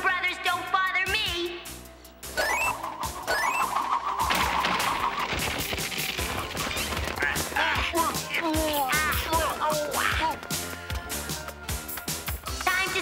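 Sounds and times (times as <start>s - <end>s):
music: 0.0s - 13.0s
rising whistles: 2.3s - 5.6s
falling whistle: 2.4s - 5.6s
crashing clatter of impacts: 3.9s - 7.6s.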